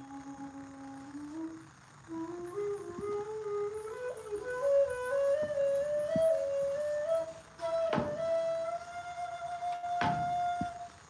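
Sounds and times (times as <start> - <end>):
flute melody: 0.0 - 11.0.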